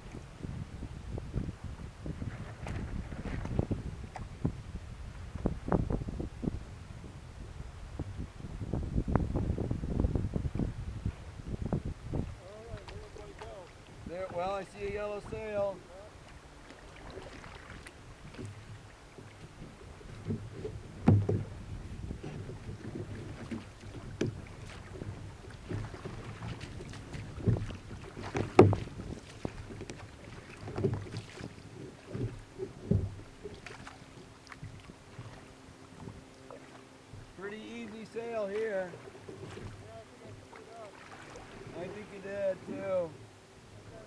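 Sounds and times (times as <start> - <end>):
water sloshing against kayak hull: 0.0 - 44.0
wind on microphone: 0.0 - 44.0
thumps on kayak hull: 18.2 - 33.9, 39.0 - 42.0.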